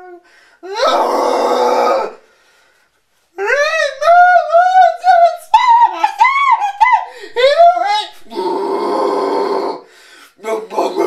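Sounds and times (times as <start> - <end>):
man's harsh raspy scream: 0.6 - 2.2, 5.5 - 9.9.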